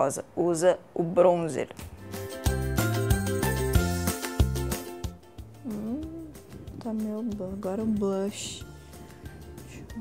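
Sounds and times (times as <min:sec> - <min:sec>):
woman humming: 0:05.6 - 0:06.8.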